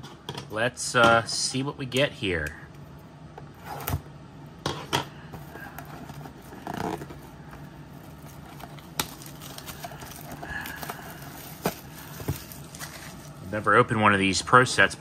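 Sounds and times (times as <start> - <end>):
plastic wrap crinkling: 5.5 - 13.7.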